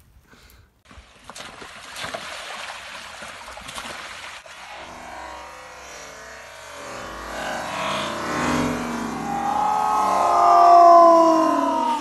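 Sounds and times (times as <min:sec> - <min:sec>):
slowed-down bike crash audio: 0:04.6 - 0:10.3.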